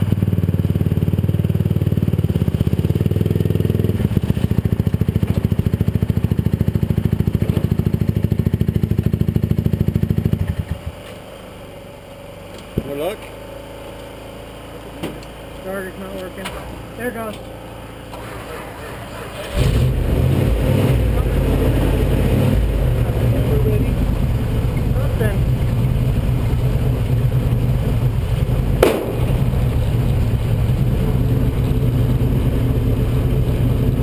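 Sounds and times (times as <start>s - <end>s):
car engine idling: 0.0s - 34.0s
sharp knock: 28.8s - 29.4s.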